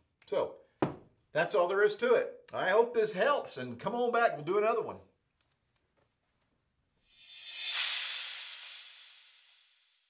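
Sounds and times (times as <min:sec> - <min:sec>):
hissing whoosh: 0:07.0 - 0:10.0.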